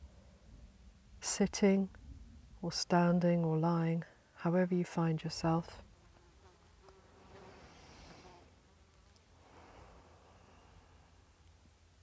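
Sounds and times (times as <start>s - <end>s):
insect buzzing: 5.8s - 8.8s.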